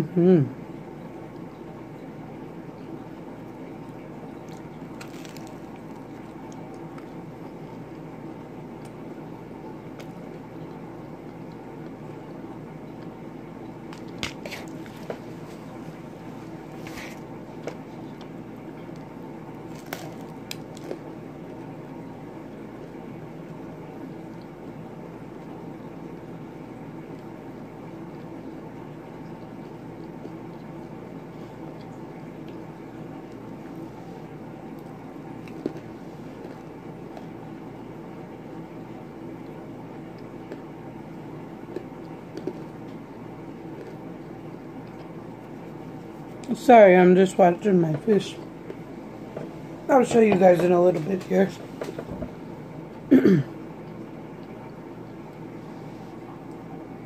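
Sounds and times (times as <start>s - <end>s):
low background hum: 0.0s - 57.0s
person chewing: 3.8s - 8.0s, 13.9s - 21.6s, 34.7s - 37.4s, 39.4s - 40.8s, 41.6s - 46.5s.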